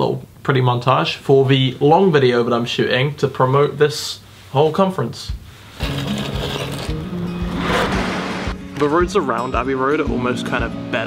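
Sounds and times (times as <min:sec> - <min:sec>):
background music with steady beat: 0:05.2 - 0:06.0, 0:06.7 - 0:11.0
rush of noise: 0:07.0 - 0:08.9.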